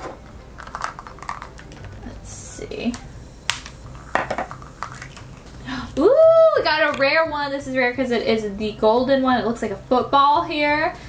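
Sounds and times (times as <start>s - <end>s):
plastic capsule snapping open: 3.5s - 5.2s.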